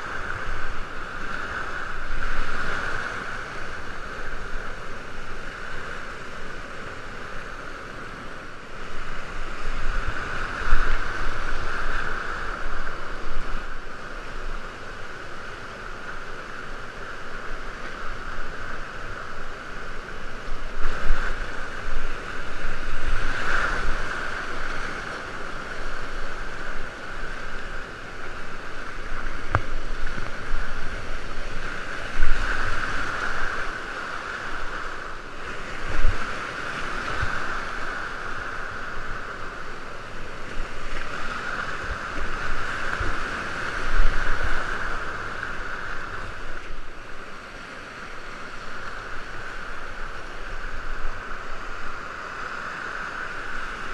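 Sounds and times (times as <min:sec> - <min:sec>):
water buffeting microphone: 0:00.0 - 0:53.9
whitewater rapids rushing: 0:00.0 - 0:53.9.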